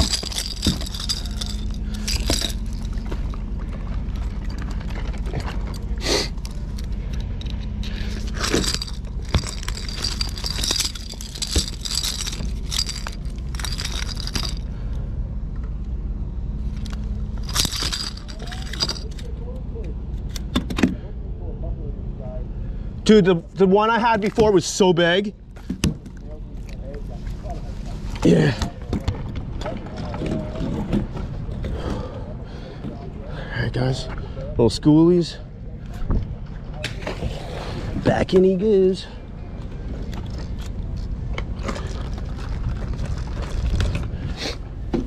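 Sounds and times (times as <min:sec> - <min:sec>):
metal fishing tackle clinking: 0:00.0 - 0:03.4, 0:05.6 - 0:14.7, 0:16.8 - 0:19.3
steady low rumble: 0:00.0 - 0:34.6.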